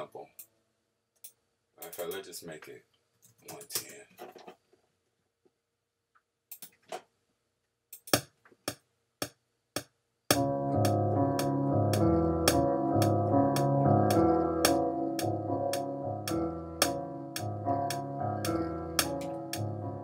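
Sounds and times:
piano chords with bass notes: 10.3s - 20.0s.

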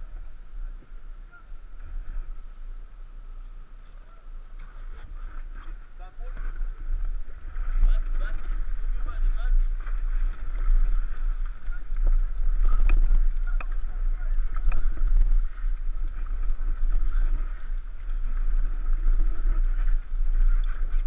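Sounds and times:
paddles splashing in water: 0.0s - 21.0s
water lapping against raft: 0.0s - 21.0s
wind rumbling on microphone: 0.0s - 21.0s.

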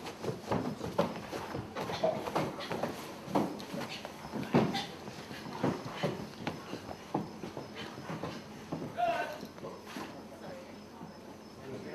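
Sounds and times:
footsteps on hollow wooden floorboards: 0.0s - 11.6s.

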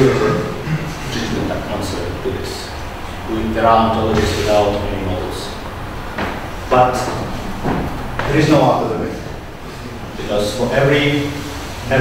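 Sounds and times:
man talking: 0.0s - 5.7s, 6.6s - 7.3s, 8.2s - 12.0s.

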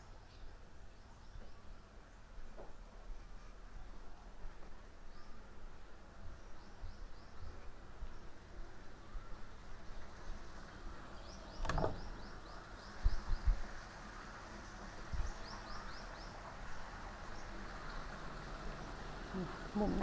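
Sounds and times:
doors pushed open with thumps: 11.6s - 12.2s.

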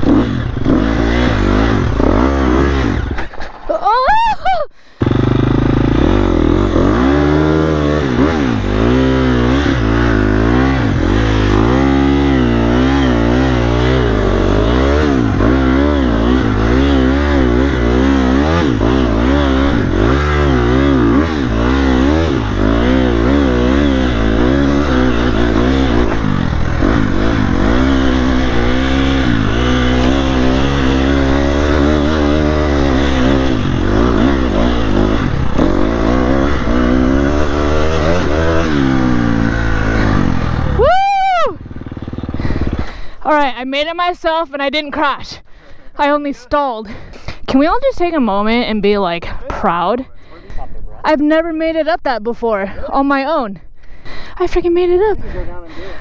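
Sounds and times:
dirt bike engine revving: 0.0s - 3.6s, 5.0s - 45.3s.

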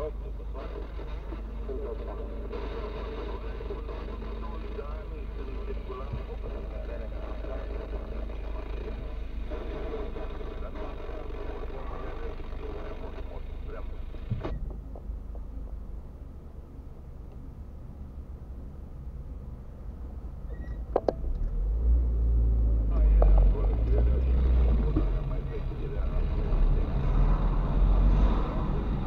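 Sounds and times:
speech inside car: 0.0s - 14.6s, 22.8s - 27.5s
engine idling hum: 0.0s - 29.0s.

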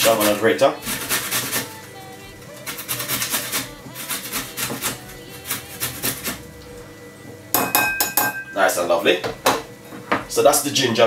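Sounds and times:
grater clanking against bowl: 0.0s - 1.7s, 2.6s - 6.4s
ginger rasping on metal grater: 0.0s - 1.8s, 2.5s - 6.4s.

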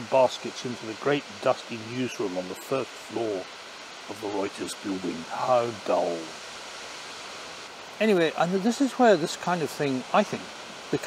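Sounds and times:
sea surf rushing: 0.0s - 11.0s
wind: 0.0s - 11.0s.

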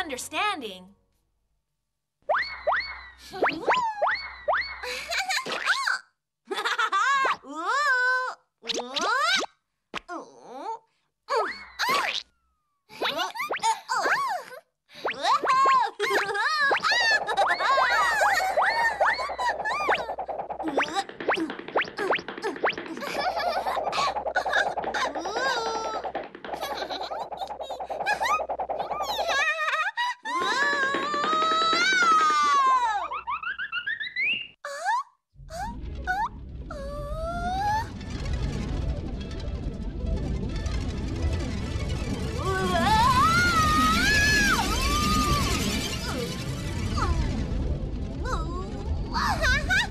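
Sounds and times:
rising cartoon chirps: 2.3s - 4.9s, 33.1s - 34.6s
swooping cartoon tone: 16.2s - 29.6s, 41.9s - 49.9s.

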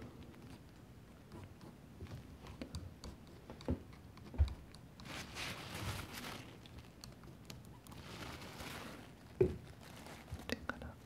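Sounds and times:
tissue rustling: 5.0s - 6.7s, 8.0s - 10.6s.

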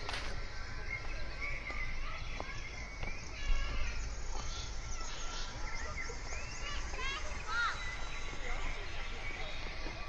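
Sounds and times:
birds chirping over loudspeakers: 0.0s - 10.0s.

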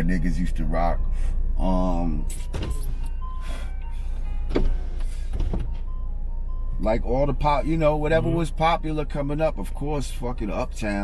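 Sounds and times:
car cabin hum: 1.6s - 11.0s.

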